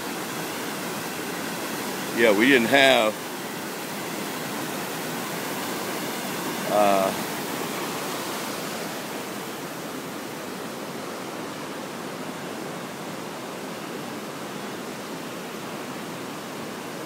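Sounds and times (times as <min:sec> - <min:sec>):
white water rushing over rapids: 0:00.0 - 0:17.0.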